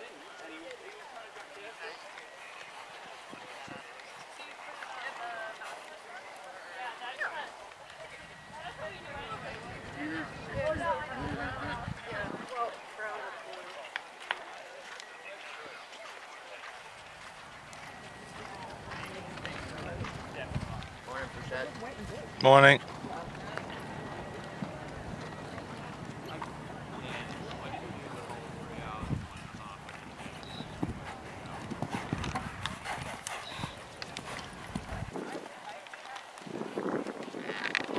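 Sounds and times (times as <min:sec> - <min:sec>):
faint background voices talking: 0:00.0 - 0:37.9
horse hoofbeats on sand: 0:16.7 - 0:37.9.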